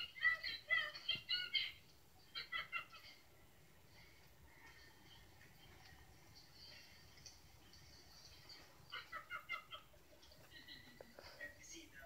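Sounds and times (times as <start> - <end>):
toy's high voice through speaker: 0.0 - 1.9.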